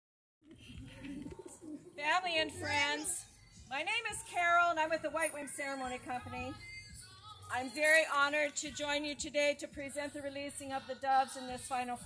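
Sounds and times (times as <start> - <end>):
doves cooing faintly: 0.4 - 3.2.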